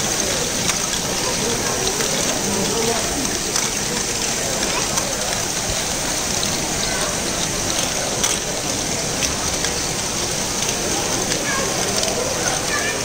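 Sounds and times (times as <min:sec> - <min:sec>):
plastic balls rattling through mechanisms: 0:00.0 - 0:13.0.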